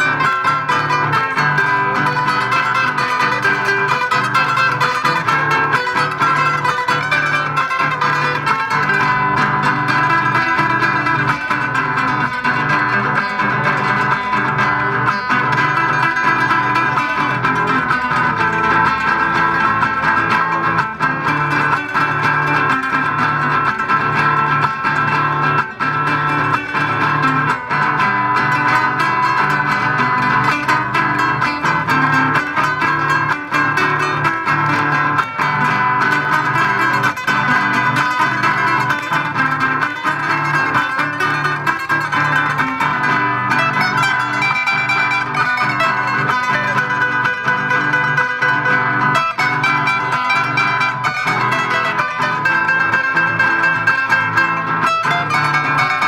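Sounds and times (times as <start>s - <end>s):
acoustic guitars playing: 0.0s - 56.0s.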